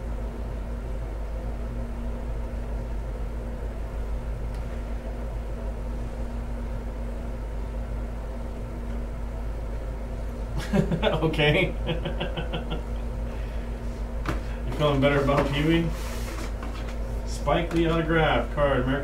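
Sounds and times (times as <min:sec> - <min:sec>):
low background rumble and hum: 0:00.0 - 0:19.0.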